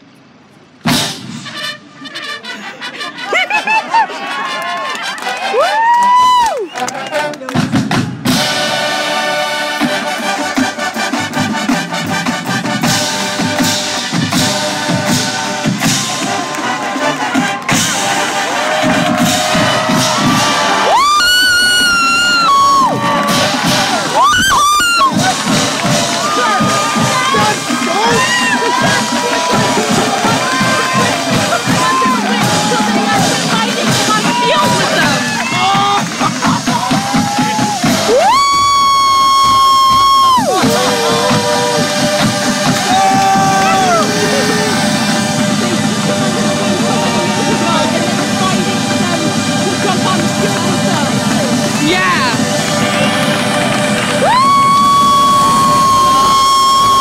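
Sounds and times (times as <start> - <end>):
crowd cheering with whistles: 3.2 - 7.5, 14.9 - 57.0
brass holding a long chord: 8.3 - 20.8, 40.6 - 51.8.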